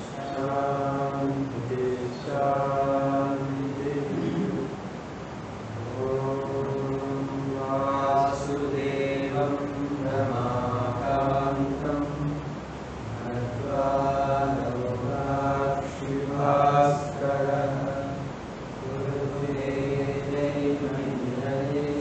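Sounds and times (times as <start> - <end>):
person chanting: 0.0 - 4.8, 5.7 - 12.4, 13.1 - 22.0.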